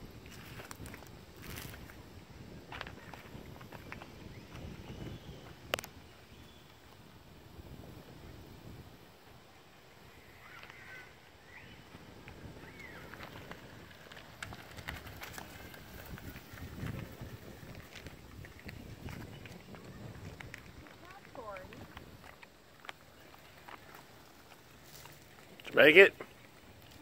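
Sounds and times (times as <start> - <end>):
wind rumble on microphone: 0.0 - 9.2, 11.6 - 24.5.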